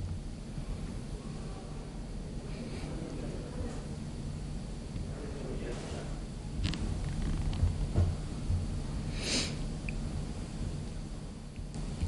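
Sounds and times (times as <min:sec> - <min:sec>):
faint pulsing hum: 0:00.0 - 0:12.0
room ambience rumble: 0:00.0 - 0:12.0.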